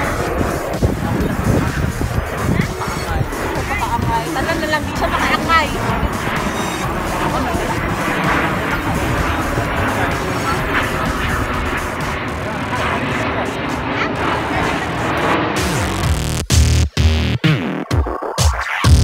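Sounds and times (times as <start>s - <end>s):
crowd voices: 0.0s - 16.4s
jet engines flying over: 0.0s - 19.0s
music: 0.0s - 19.0s.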